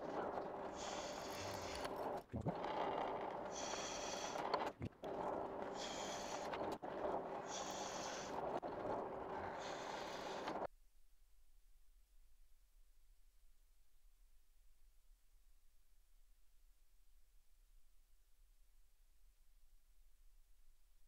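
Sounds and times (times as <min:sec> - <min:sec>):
drill press motor hum: 0:00.0 - 0:10.7.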